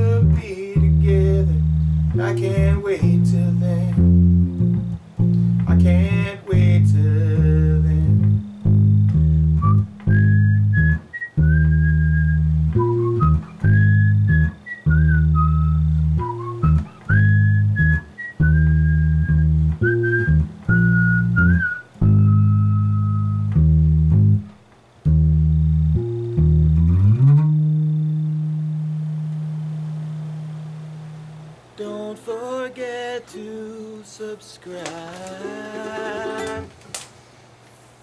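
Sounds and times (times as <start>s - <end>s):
high sliding lead melody: 0.0s - 31.6s
electric bass low notes: 0.0s - 31.7s.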